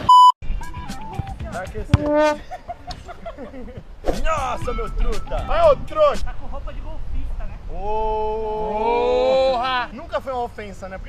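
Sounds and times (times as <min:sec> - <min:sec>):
loud pitched sound: 0:01.9 - 0:02.4
chuckling laughs: 0:02.4 - 0:03.9.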